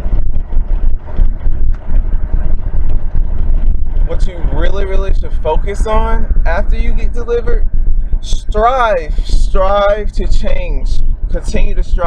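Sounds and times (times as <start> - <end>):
road noise inside moving car: 0.0 - 12.0
wind buffeting microphone: 0.0 - 12.0.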